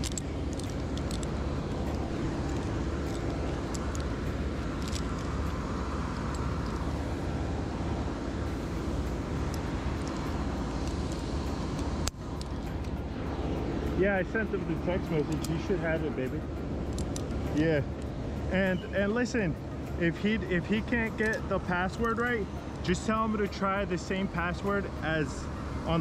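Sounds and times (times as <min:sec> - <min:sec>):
low rumble of engine or traffic: 0:00.0 - 0:26.0.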